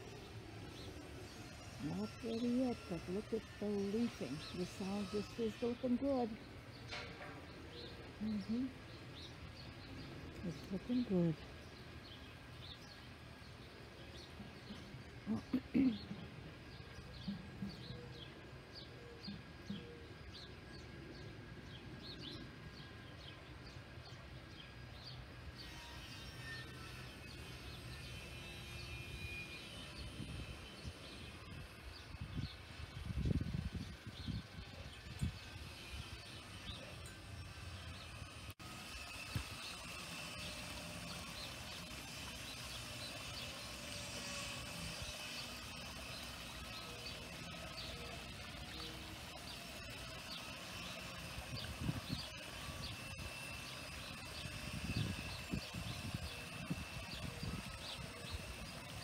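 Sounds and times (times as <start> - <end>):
songbirds chirping: 0.0 - 59.0.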